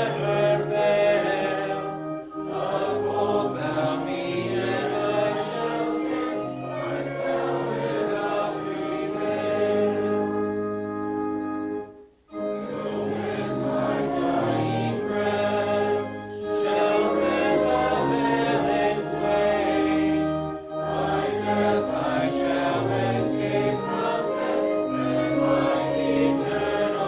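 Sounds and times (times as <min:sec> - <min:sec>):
congregation singing a hymn: 0:00.0 - 0:27.0
organ accompaniment: 0:00.0 - 0:27.0.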